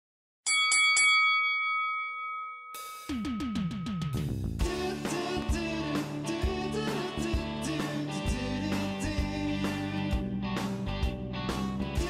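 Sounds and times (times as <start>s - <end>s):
bright bell-like chime: 0.5s - 4.2s.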